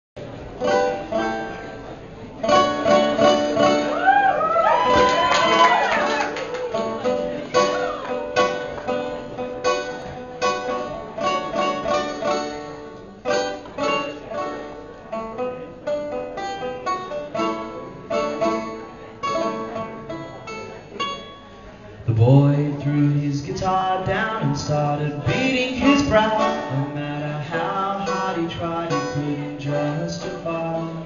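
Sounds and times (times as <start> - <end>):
banjo plucked notes: 0.2 - 4.0, 6.2 - 31.0.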